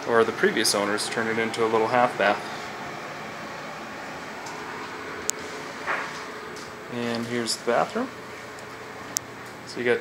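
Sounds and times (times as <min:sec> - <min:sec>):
faint hum: 0:00.0 - 0:10.0.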